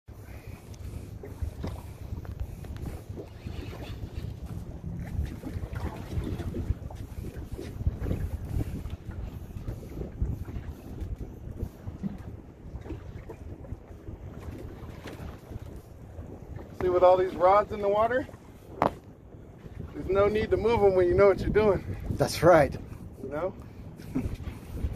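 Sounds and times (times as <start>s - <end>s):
wind buffeting microphone: 0.1s - 24.9s.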